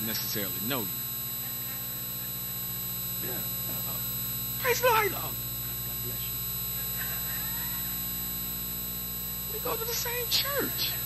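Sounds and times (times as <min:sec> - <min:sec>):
electrical hum with buzz: 0:00.0 - 0:11.0.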